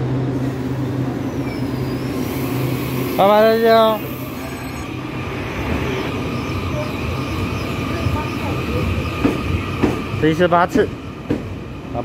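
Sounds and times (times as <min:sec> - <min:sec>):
train rolling past: 0:00.0 - 0:12.0.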